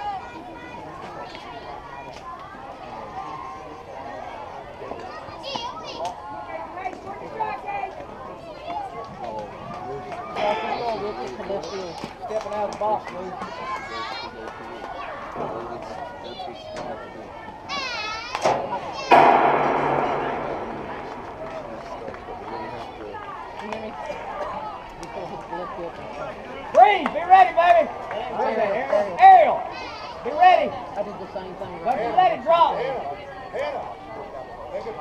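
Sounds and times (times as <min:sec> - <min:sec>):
voices calling out: 0:00.0 - 0:35.0
loud clatter: 0:18.5 - 0:22.9.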